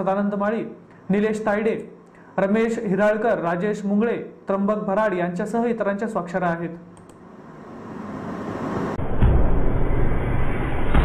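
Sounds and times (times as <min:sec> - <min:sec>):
whoosh transition effect: 0:07.3 - 0:11.0.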